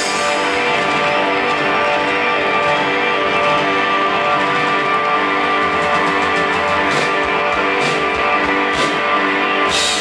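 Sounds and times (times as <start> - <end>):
rock band playing live: 0.0 - 10.0
strummed guitar chords: 0.0 - 10.0.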